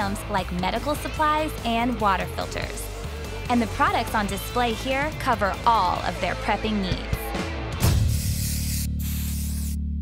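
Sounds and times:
spray-paint can hissing: 7.9s - 9.9s.

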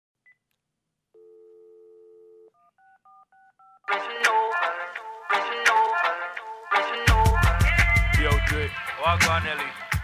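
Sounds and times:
telephone dial tone: 1.2s - 3.9s
music: 3.9s - 10.0s.

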